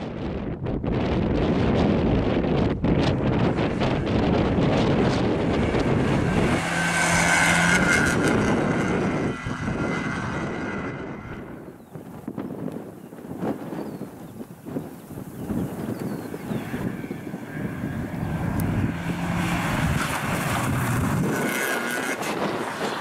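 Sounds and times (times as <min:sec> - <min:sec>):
car engine revving hard: 0:03.6 - 0:11.7, 0:16.3 - 0:23.0.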